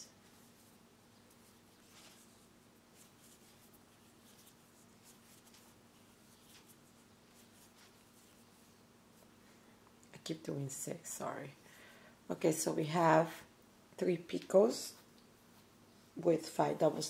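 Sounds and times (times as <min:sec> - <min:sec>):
low steady hum: 0:00.0 - 0:17.0
soft rustles of thread: 0:00.0 - 0:17.0.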